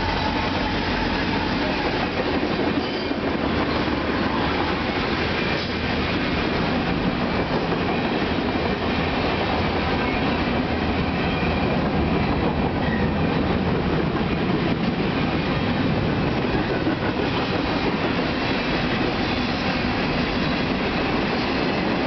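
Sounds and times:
freight train wheels on rail: 0.0s - 22.0s.

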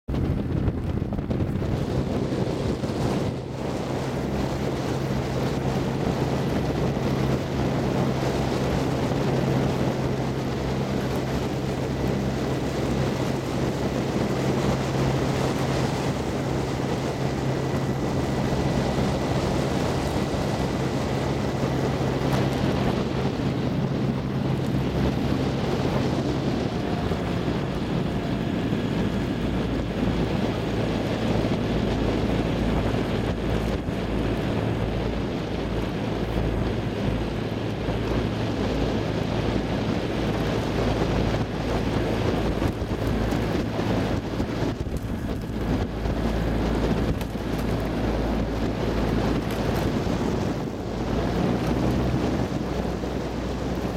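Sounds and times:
outboard motor humming: 0.1s - 53.9s
water noise: 0.1s - 53.9s
wind buffeting microphone: 0.1s - 53.9s.

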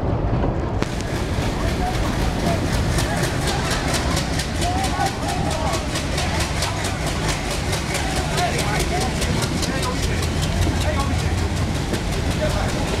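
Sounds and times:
train wheels rumbling and clicking: 0.0s - 13.0s.

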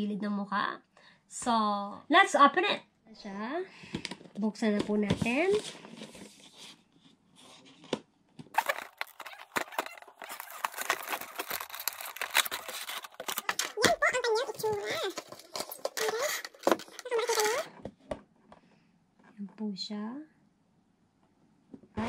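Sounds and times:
cardboard box rustling and crackling: 7.5s - 17.7s.

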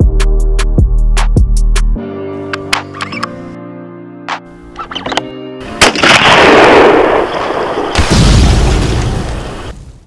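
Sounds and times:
rifle shot echoing: 5.8s - 8.8s.

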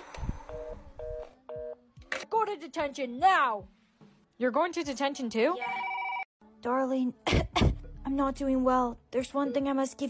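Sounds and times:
telephone busy tone beeps: 5.7s - 6.3s.

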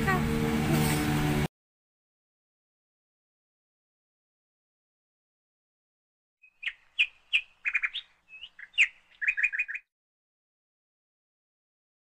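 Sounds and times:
small bird chirping: 6.4s - 9.9s.

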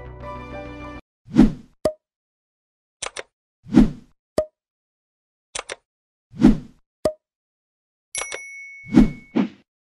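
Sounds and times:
sharp click with ringing tone: 8.2s - 8.6s.

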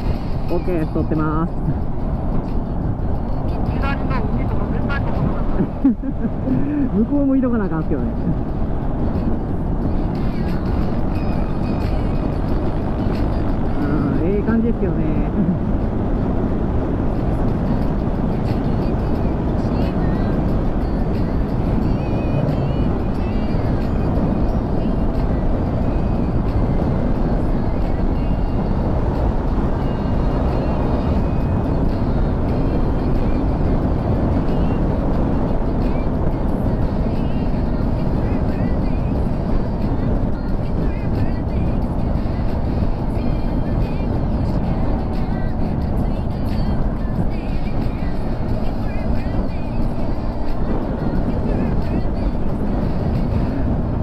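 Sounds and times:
road noise: 0.0s - 54.0s
wind rush: 0.0s - 54.0s
motorcycle engine running: 9.6s - 33.8s.

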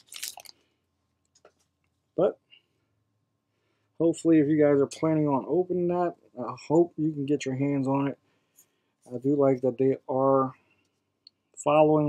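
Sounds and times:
trading cards clicking and rustling: 0.0s - 0.6s.

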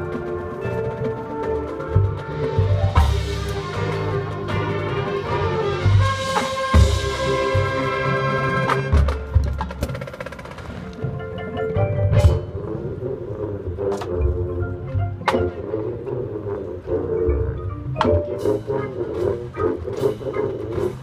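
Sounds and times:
marimbas and mallet percussion: 0.0s - 5.4s, 10.9s - 13.1s, 13.9s - 21.0s
marching band playing: 0.0s - 21.0s.

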